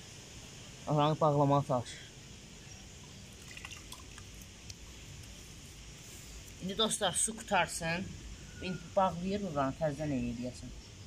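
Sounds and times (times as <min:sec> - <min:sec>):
water trickling from a hose: 0:02.4 - 0:06.7
small drip-like ticks: 0:02.7 - 0:06.6.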